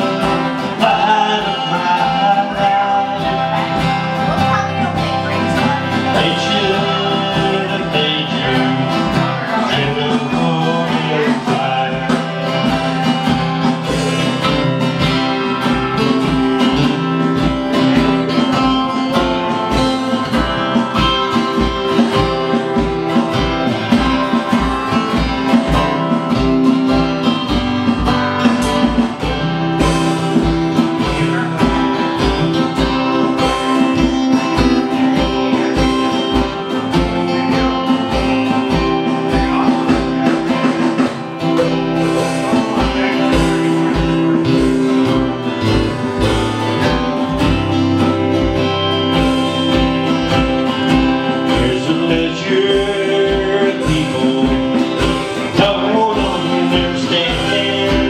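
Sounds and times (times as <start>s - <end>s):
acoustic guitars strumming: 0.0s - 58.0s.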